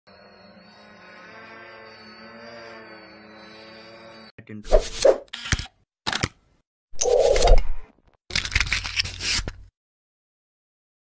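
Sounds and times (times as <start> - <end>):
quadcopter hovering hum: 0.1 - 4.3.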